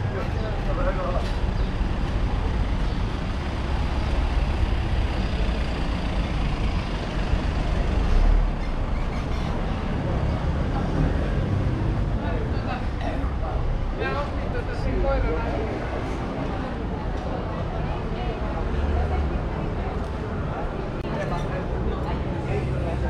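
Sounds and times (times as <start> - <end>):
street traffic rumbling: 0.0 - 23.0
voices of passers-by: 0.0 - 23.0.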